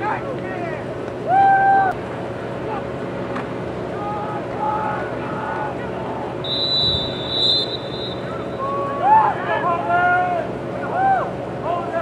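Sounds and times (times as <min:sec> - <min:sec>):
distant voices shouting: 0:03.8 - 0:12.0
referee's whistle: 0:06.4 - 0:08.7.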